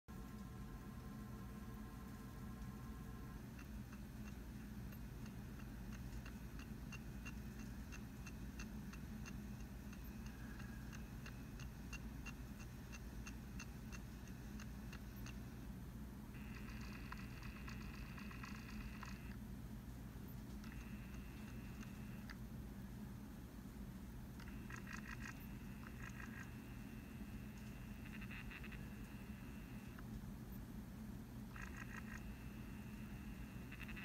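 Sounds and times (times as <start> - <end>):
soft electronic ticks: 0.1 - 19.5, 20.2 - 22.5, 24.1 - 30.7, 31.4 - 34.0
low hum: 0.1 - 34.0
rapid electronic chatter: 2.8 - 15.6, 16.3 - 19.4, 20.5 - 22.3, 24.4 - 30.0, 31.5 - 34.0.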